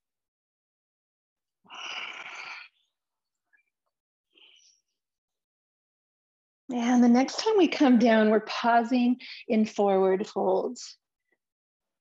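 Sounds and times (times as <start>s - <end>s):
person exhaling through mouth: 1.7s - 2.8s.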